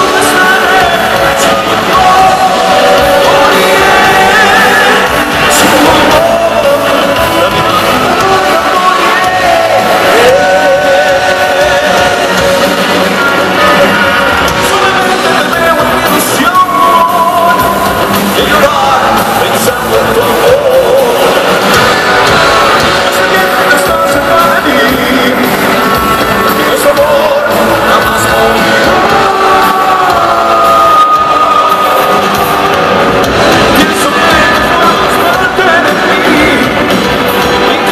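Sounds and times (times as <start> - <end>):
heavy metal band playing live: 0.0 - 37.9.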